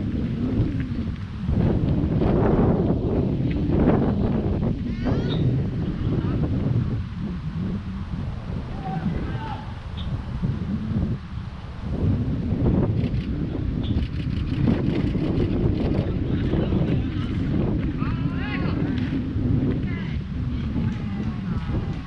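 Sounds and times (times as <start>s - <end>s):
wind buffeting microphone: 0.0s - 22.0s
person shouting: 8.7s - 9.8s.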